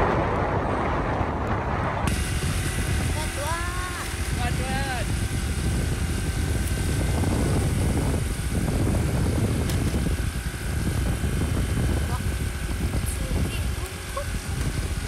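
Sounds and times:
motorbike road noise: 0.0 - 15.0
wind buffeting microphone: 0.0 - 15.0.

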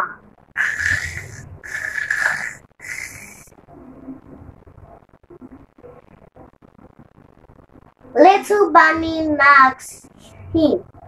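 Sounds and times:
child imitating snoring: 0.6 - 3.5.

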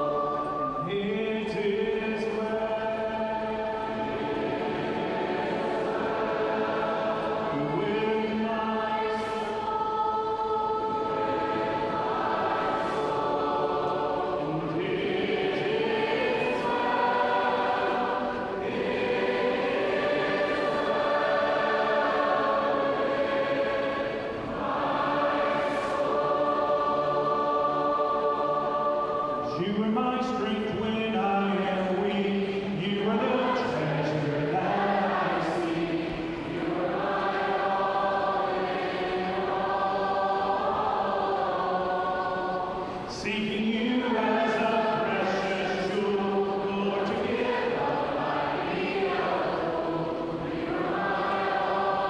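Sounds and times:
crowd singing a worship song: 0.0 - 52.0.

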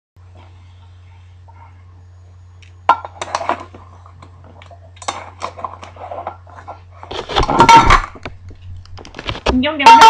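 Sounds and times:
tin can clanking on tile floor: 7.4 - 8.3.

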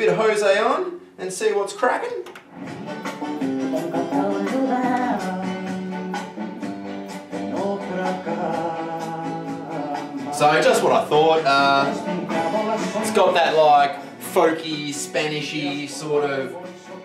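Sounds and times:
acoustic guitar music from turntable: 2.4 - 17.0.

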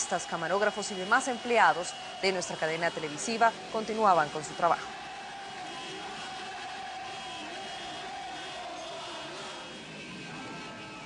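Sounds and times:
motorcycle engines and crowd din: 0.0 - 11.0.

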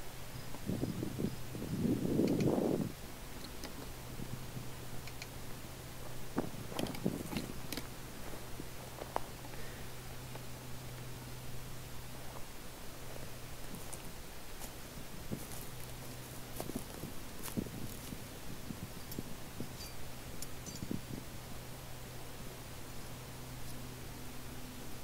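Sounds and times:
steady low hum: 0.0 - 25.0
rustling of ground litter: 12.1 - 19.7.

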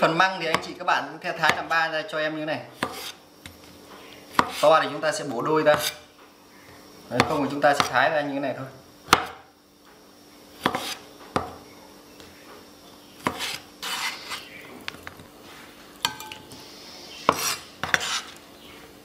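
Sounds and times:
knife chopping on wooden board: 2.8 - 3.2, 4.3 - 4.7, 5.7 - 6.0, 9.1 - 9.4, 10.6 - 11.6, 13.2 - 14.0, 17.3 - 18.2
knife scraping cutting board: 2.8 - 3.2, 4.3 - 4.8, 5.7 - 6.1, 10.6 - 11.1, 13.2 - 14.6, 17.2 - 18.4.

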